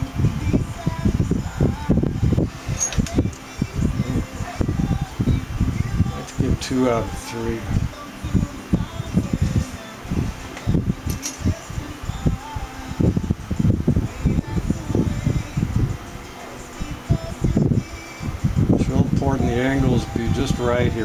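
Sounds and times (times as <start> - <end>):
wind buffeting microphone: 0.0 - 16.0, 16.8 - 21.0.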